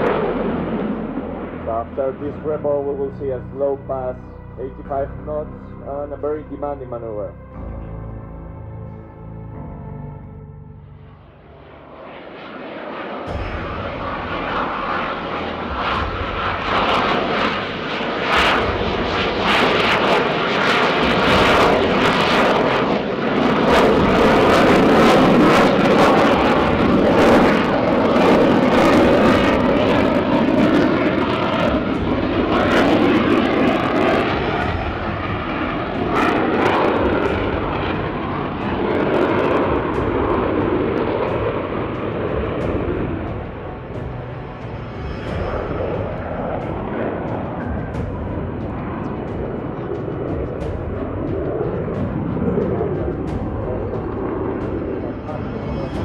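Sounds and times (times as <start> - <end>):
jet engine roar: 0.0 - 56.0.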